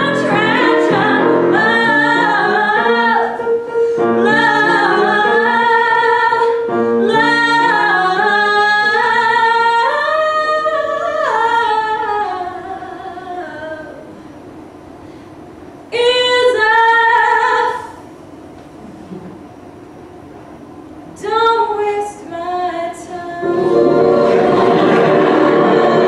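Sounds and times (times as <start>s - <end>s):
woman singing a ballad: 0.0s - 3.4s, 4.1s - 14.1s, 21.2s - 23.8s
piano accompaniment: 0.0s - 9.8s, 23.4s - 26.0s.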